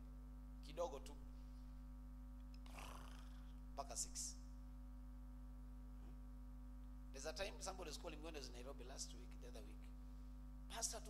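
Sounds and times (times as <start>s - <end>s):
electrical hum: 0.0s - 11.0s
person speaking: 2.6s - 4.4s, 10.7s - 11.0s.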